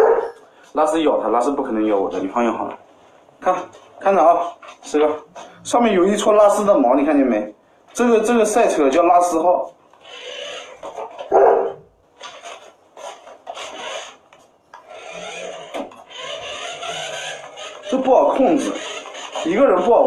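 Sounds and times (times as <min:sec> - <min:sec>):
toy car whirring on wooden floor: 0:10.0 - 0:11.3, 0:12.2 - 0:20.0.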